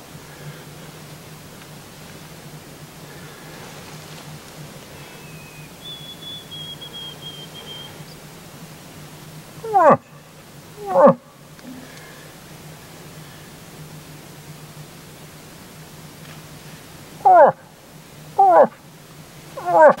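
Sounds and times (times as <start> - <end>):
imitation moose calls: 4.7 - 8.3, 9.6 - 12.2, 17.2 - 17.7, 18.4 - 18.8, 19.6 - 20.0.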